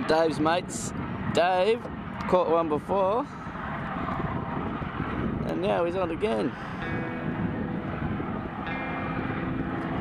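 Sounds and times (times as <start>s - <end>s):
wind buffeting microphone: 0.0s - 10.0s
boat engine humming: 5.6s - 10.0s.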